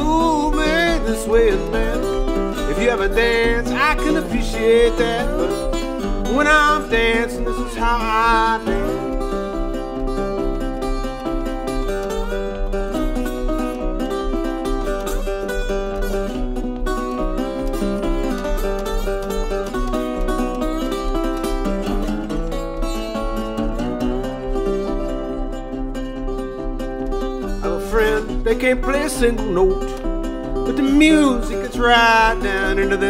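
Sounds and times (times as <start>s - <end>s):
fingerpicked resonator guitar: 0.0s - 33.0s.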